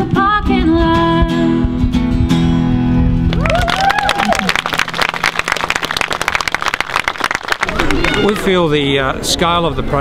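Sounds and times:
person singing with acoustic guitar: 0:00.0 - 0:02.9
audience applause: 0:03.3 - 0:08.6.

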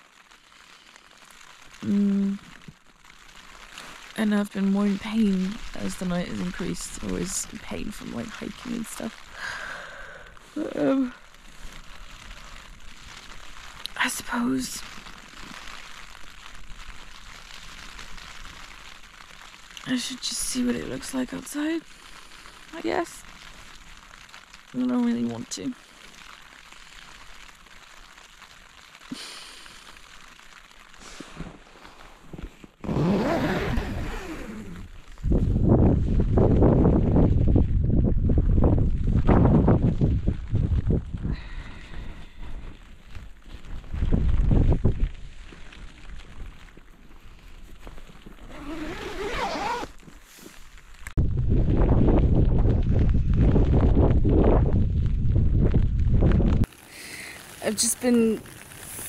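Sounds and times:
wind buffeting microphone: 0:33.6 - 0:43.0, 0:43.6 - 0:45.4, 0:51.2 - 0:56.7.

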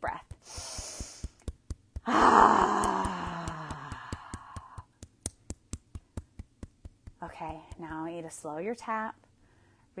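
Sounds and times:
fist tapping on chest: 0:00.1 - 0:08.4
woman's long voiced sigh: 0:02.1 - 0:04.0.

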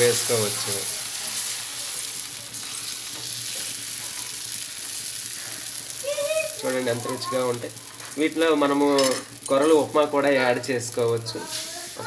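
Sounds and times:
batter sizzling on a griddle: 0:00.0 - 0:12.0.

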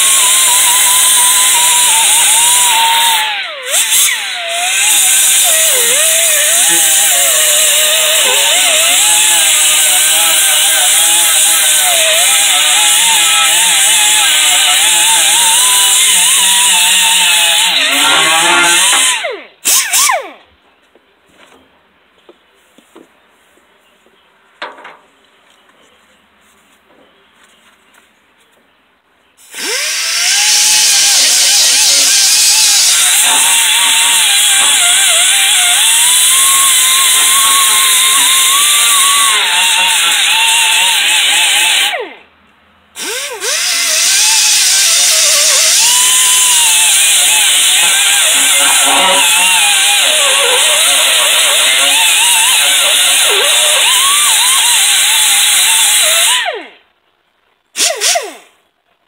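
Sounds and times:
pneumatic die grinder whine: 0:29.4 - 0:42.2, 0:43.0 - 0:56.8, 0:57.8 - 0:58.5.

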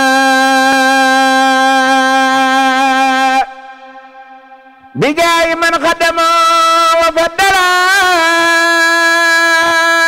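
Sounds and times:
man chanting a long note: 0:00.0 - 0:10.0.

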